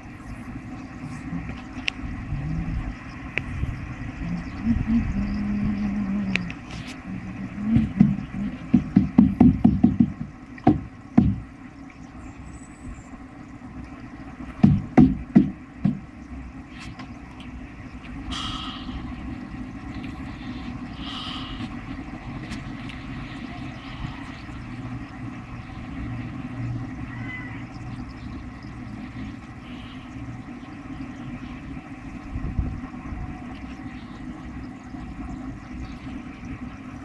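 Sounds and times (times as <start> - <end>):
air pump humming: 0.0 - 37.0
dull thump: 7.7 - 11.5, 14.5 - 16.1.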